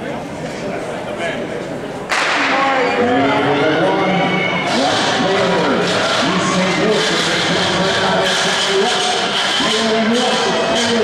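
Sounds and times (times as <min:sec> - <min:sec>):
voices rising: 0:02.1 - 0:11.0.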